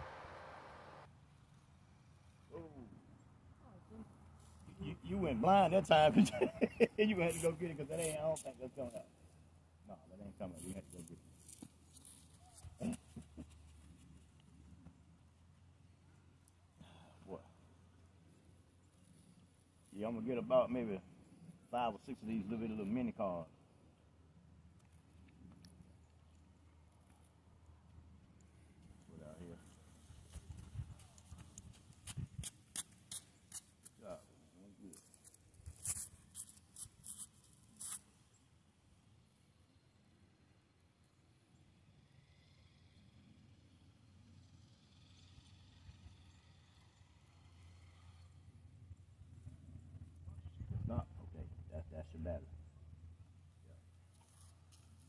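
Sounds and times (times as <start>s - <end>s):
faint low hum: 0.0s - 55.0s.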